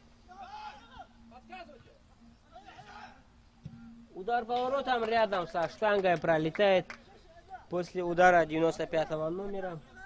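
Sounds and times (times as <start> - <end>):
steady low hum: 0.0 - 5.5
distant players shouting: 0.2 - 3.4.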